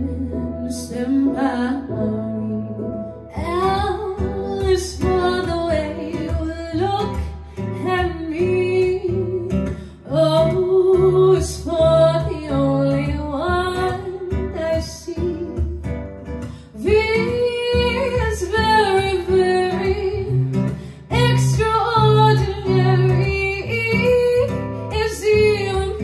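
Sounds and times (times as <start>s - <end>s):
guitar accompaniment: 0.0s - 26.0s
woman singing into a microphone: 0.0s - 26.0s.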